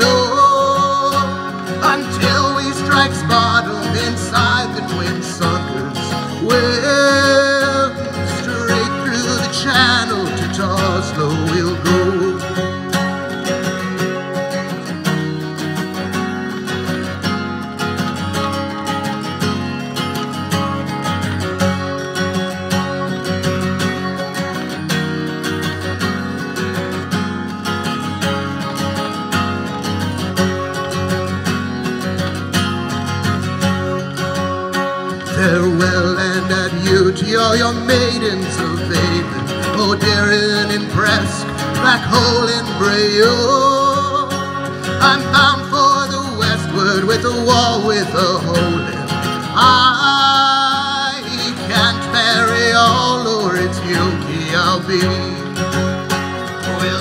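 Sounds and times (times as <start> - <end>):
man singing: 0.0 - 13.0, 35.1 - 57.0
acoustic guitar strumming: 0.0 - 57.0.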